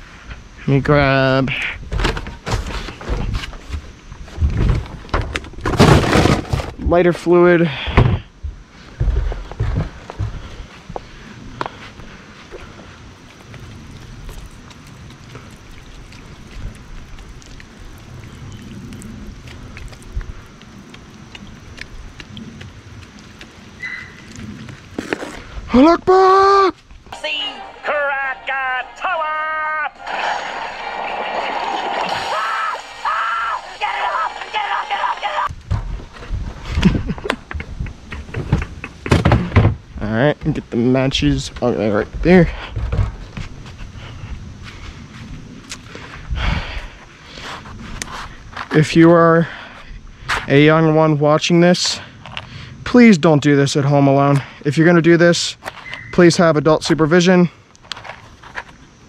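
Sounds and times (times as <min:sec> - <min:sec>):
footsteps: 0:07.8 - 0:25.7
liquid stream hissing: 0:12.3 - 0:25.4
handling noise: 0:12.6 - 0:25.5
squeeze bottle squeaking: 0:23.8 - 0:24.4.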